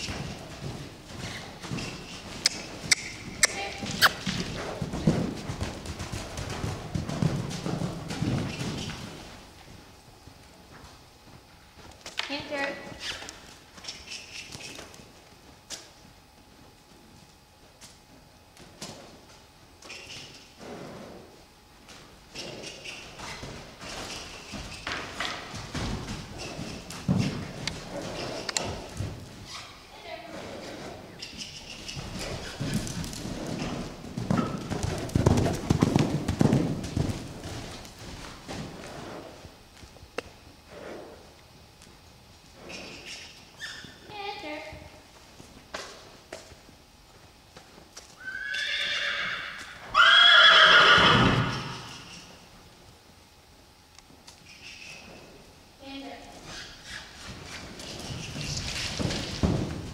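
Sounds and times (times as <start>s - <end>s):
horse hooves on sand: 0.0s - 20.2s, 21.8s - 40.5s, 55.9s - 59.9s
horse whinnying: 48.2s - 52.3s.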